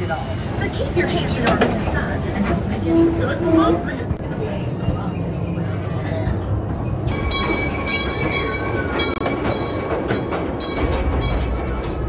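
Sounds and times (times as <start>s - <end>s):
ride train rumbling on track: 0.0s - 12.0s.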